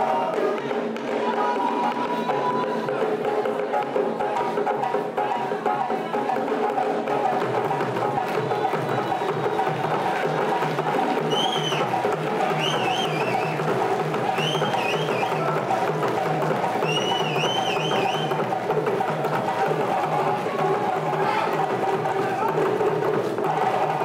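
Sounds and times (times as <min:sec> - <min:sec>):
djembe ensemble drumming: 0:00.0 - 0:24.0.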